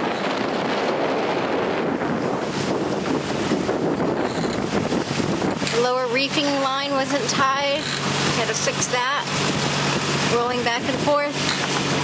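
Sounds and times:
sea rushing: 0.0 - 12.0
wind buffeting microphone: 0.0 - 12.0.

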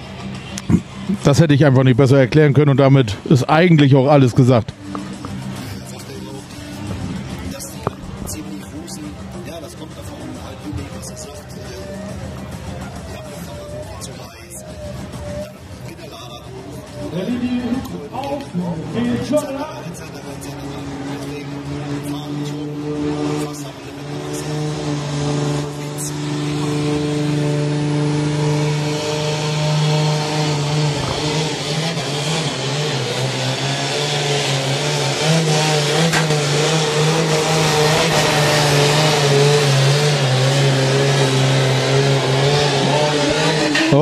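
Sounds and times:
diesel tractor engine under load: 0.0 - 44.0.

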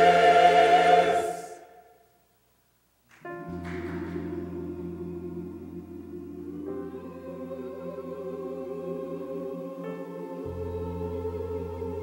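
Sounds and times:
choir singing a sustained chord: 0.0 - 2.0, 3.7 - 12.0.

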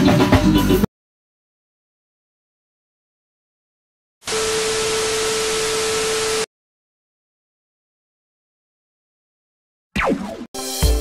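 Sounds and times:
tv static hiss: 4.3 - 6.5.

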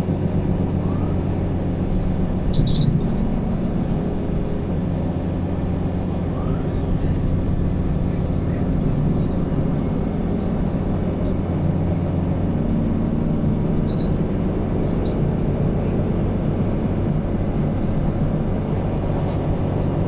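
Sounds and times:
bus diesel engine drone: 0.0 - 20.0.

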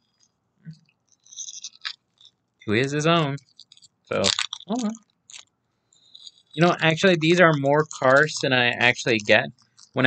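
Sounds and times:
crunchy snack being chewed: 3.4 - 5.4.

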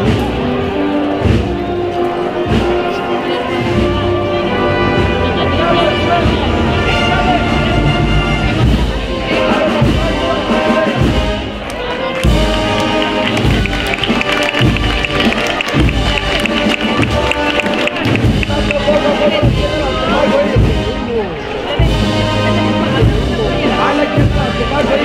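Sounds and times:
brass band playing a march: 0.0 - 25.0
low drum beats: 0.0 - 25.0.

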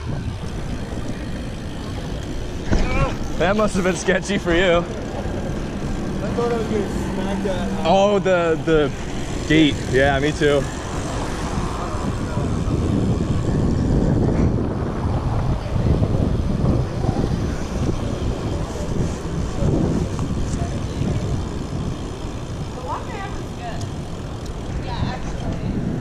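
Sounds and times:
bike tyre noise: 0.0 - 26.0
car traffic: 0.0 - 26.0
wind buffeting camera: 0.0 - 26.0.

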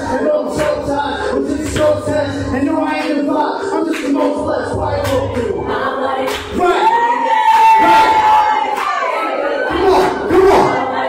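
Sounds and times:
backing track with bass: 0.0 - 8.7.

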